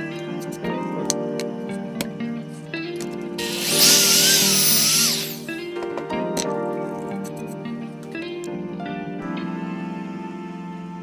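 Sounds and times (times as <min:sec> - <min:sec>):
background music: 0:00.0 - 0:11.0
power drill boring into wood: 0:03.4 - 0:05.5.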